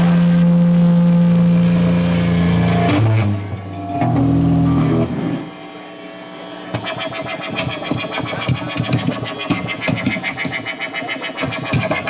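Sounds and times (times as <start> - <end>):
harsh amplified noise music: 0.0 - 12.0.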